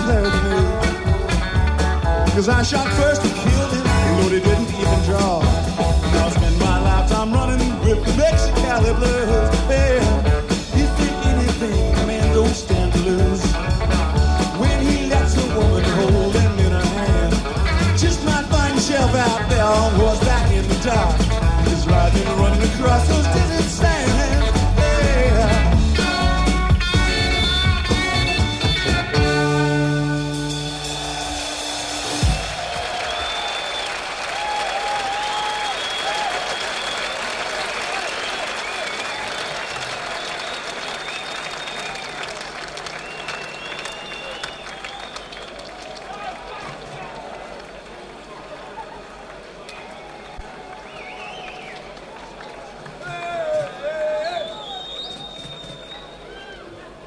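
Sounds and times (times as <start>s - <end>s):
rock band closing chord: 0.0s - 32.8s
audience applauding and cheering: 12.7s - 57.0s
crowd shouting: 30.4s - 57.0s.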